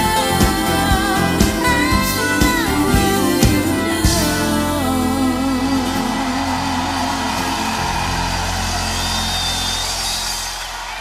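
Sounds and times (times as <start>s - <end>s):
pop band sustained chord: 0.0s - 10.9s
stage noise: 0.0s - 11.0s.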